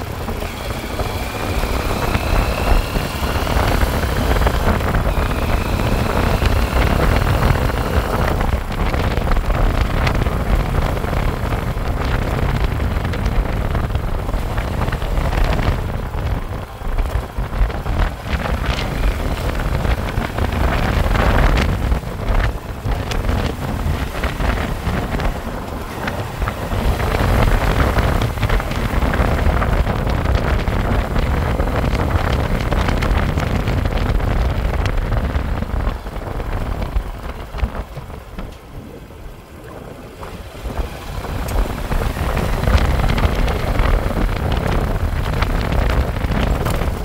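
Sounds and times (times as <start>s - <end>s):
motorcycle engine running: 0.0s - 47.0s
wind buffeting microphone: 0.0s - 47.0s.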